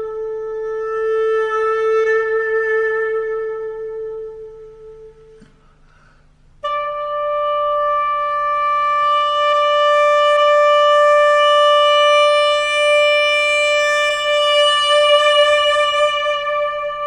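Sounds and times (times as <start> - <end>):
wind instrument holding long note: 0.0 - 5.9, 6.6 - 17.0.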